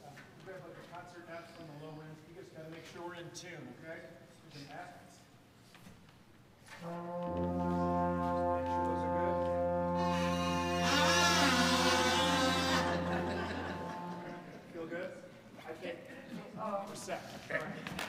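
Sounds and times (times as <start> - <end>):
band holding brass-led chord: 6.8 - 14.8.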